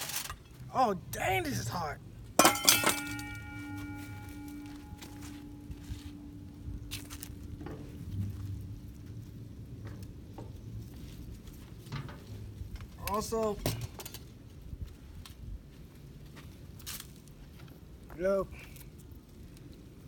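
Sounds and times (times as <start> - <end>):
steel bowl ringing: 2.4 - 7.3.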